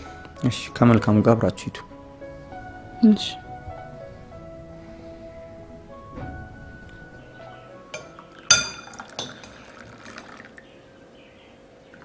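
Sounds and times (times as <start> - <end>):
china teacups clinking: 8.0 - 10.6
tea pouring into cup: 8.0 - 10.7.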